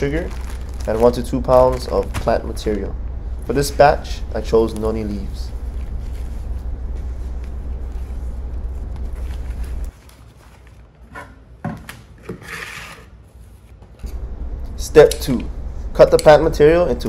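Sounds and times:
papery leaf rustle: 0.0 - 2.9, 3.5 - 11.0
low steady hum: 0.0 - 11.0, 13.4 - 17.0.

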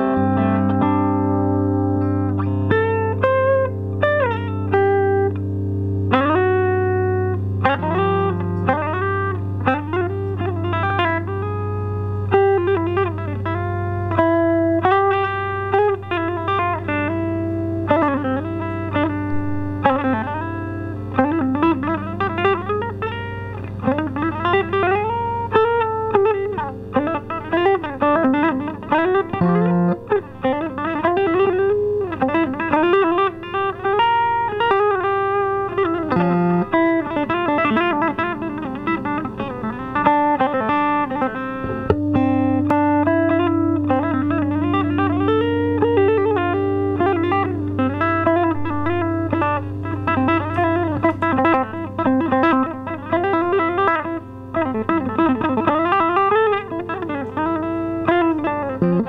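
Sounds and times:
electric guitar riff with bends: 0.0 - 59.0
low guitar note ringing: 0.0 - 59.0.

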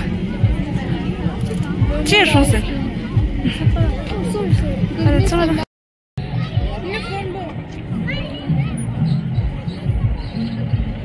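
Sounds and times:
faint voices: 0.0 - 5.6, 6.2 - 11.0.

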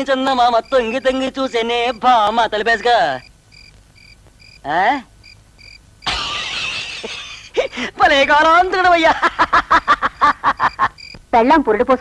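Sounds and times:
man speaking: 0.0 - 3.3, 7.9 - 9.2
cricket chirping: 0.0 - 12.0.

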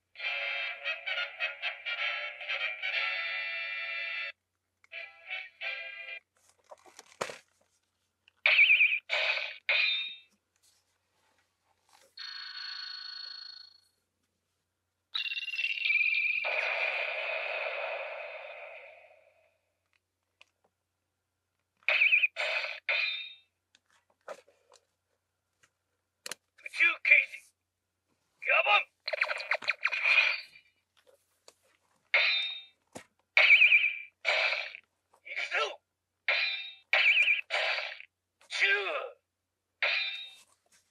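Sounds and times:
warbling electronic bursts: 29.1 - 30.6.

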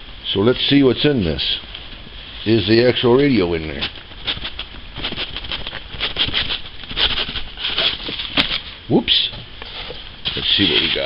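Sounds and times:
cardboard box rustling and scraping: 4.4 - 8.7.

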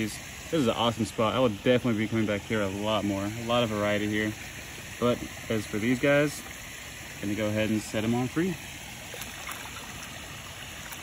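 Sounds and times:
water pouring into pond: 0.0 - 11.0
faint splashes: 8.3 - 11.0.

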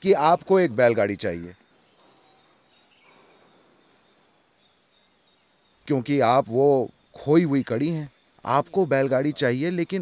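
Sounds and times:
man speaking: 0.0 - 1.6, 5.9 - 10.0
faint background hiss: 0.0 - 10.0
thin steady high tone: 0.0 - 10.0.

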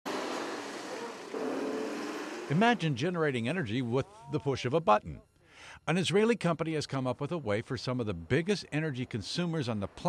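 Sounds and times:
truck driving past: 0.0 - 3.8.

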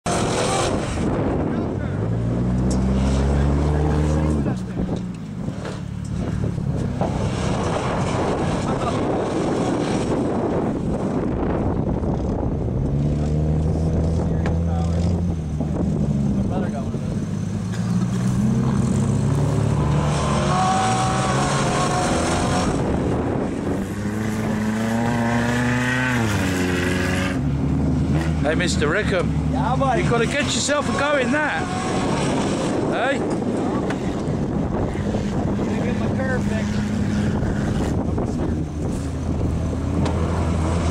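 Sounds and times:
car engine revving hard: 0.0 - 4.9, 5.5 - 11.5, 12.7 - 40.9.

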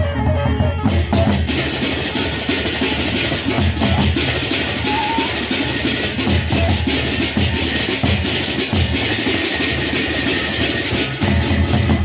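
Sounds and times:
barrel drums beaten with sticks: 0.9 - 12.0
cymbals clashing rapidly: 1.0 - 12.0.

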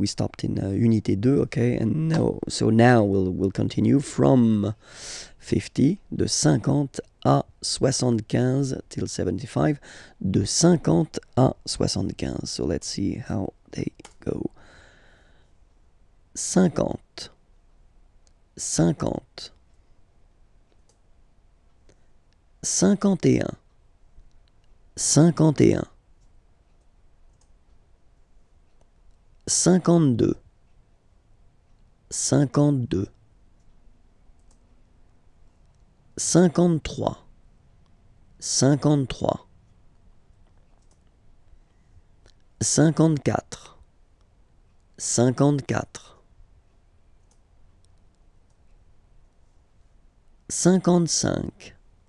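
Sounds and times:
man saying a word: 1.6 - 2.8
faint clicks: 26.2 - 27.8, 34.4 - 34.8, 39.7 - 42.5, 47.2 - 49.4
faint computer mouse clicks: 40.4 - 42.5.

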